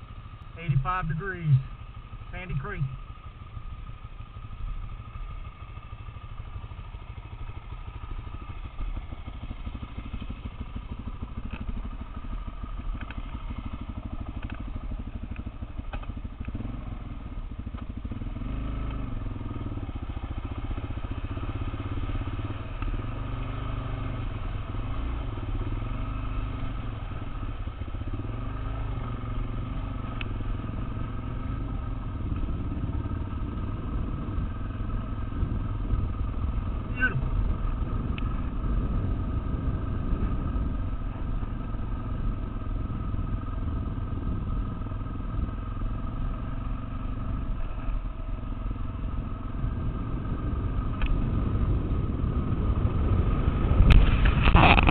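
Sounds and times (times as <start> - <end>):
off-road motorcycle engine: 0.0 - 54.9.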